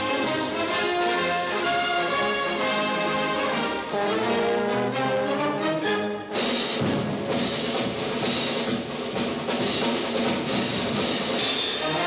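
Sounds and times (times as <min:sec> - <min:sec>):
brass notes: 0:00.0 - 0:07.2, 0:11.6 - 0:12.0
marching band drums: 0:00.0 - 0:12.0.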